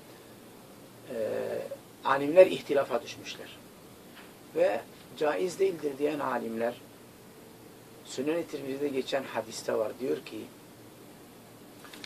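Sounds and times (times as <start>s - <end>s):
man saying ehh: 1.1s - 1.8s.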